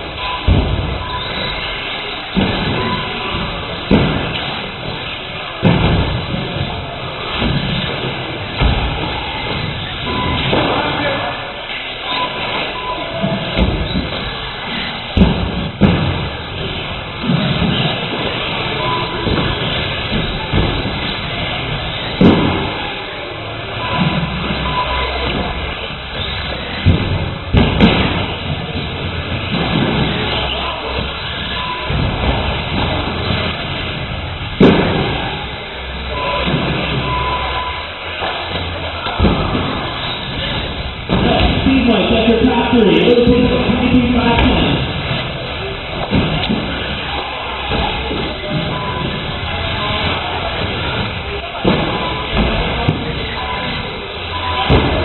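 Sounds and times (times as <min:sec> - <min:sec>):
cars thudding on track: 0:00.0 - 0:55.0
voices in a large hall: 0:00.0 - 0:55.0.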